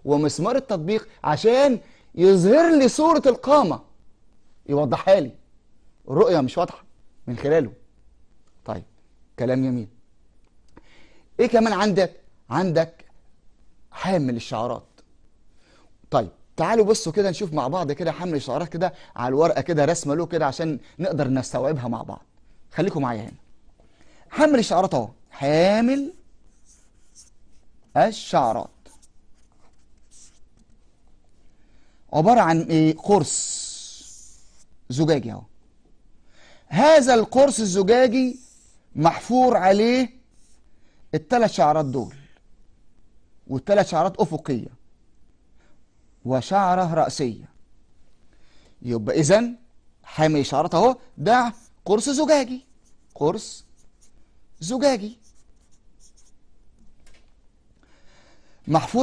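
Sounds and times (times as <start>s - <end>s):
marker scratching on paper: 25.9s - 30.9s, 33.2s - 34.8s, 38.3s - 38.8s, 40.3s - 40.7s, 51.4s - 56.4s.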